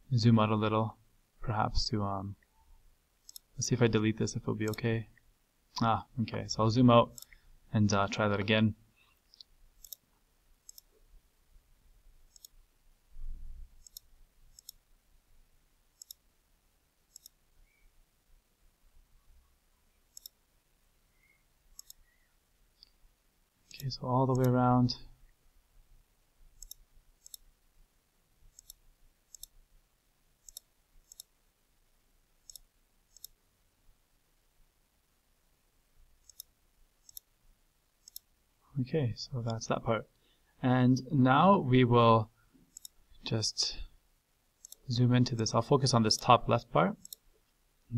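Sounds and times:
computer mouse button clicking: 13.8 - 14.8, 16.0 - 16.2, 17.1 - 17.4, 20.1 - 20.4, 21.8 - 22.0, 28.5 - 29.5, 30.4 - 31.3, 32.5 - 33.4, 47.0 - 47.2.

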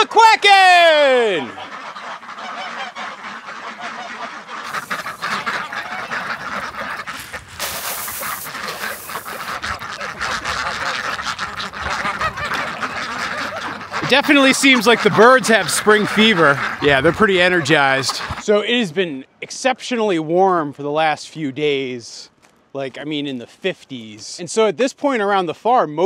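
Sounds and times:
chickens calling: 0.0 - 18.6
geese honking: 0.6 - 18.5
ducks quacking: 0.8 - 18.6.

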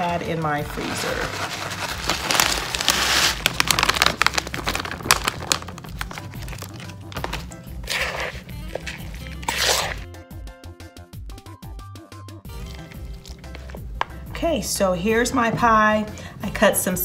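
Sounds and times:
background music: 0.0 - 17.0
plastic bag crinkling: 0.1 - 10.0.

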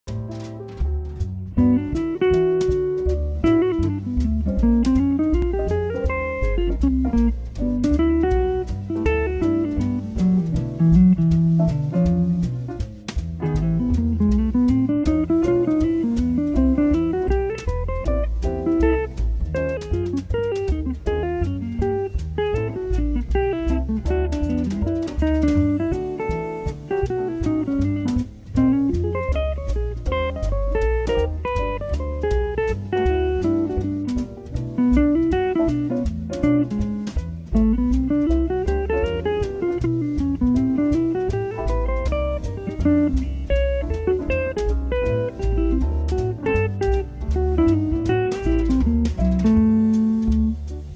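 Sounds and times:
backing track of bass and drums: 0.0 - 50.9.

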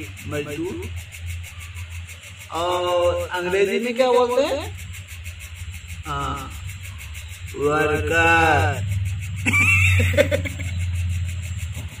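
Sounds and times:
steady low hum: 0.0 - 12.0
man laughing: 9.4 - 11.0.

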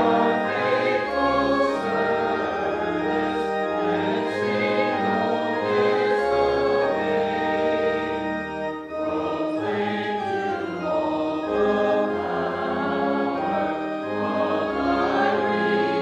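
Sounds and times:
congregation singing a hymn: 0.0 - 16.0.

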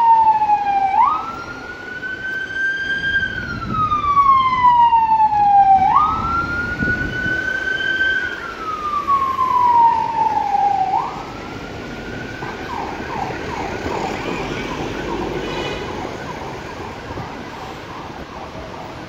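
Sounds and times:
emergency siren wailing: 0.0 - 19.0
road traffic: 0.0 - 19.0.

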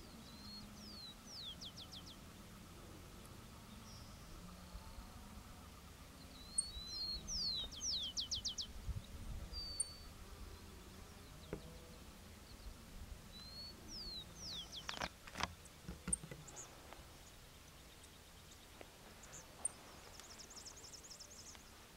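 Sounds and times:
bird singing whistled notes: 0.0 - 2.2, 6.2 - 10.2, 13.3 - 15.0.

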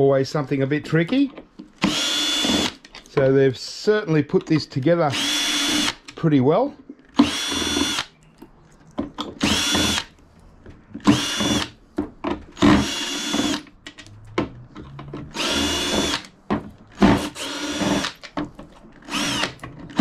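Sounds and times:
cordless drill whining: 1.8 - 2.8, 5.1 - 6.0, 7.2 - 8.1, 9.4 - 10.2, 11.0 - 11.8, 12.6 - 13.7, 15.0 - 18.2, 19.0 - 20.0.

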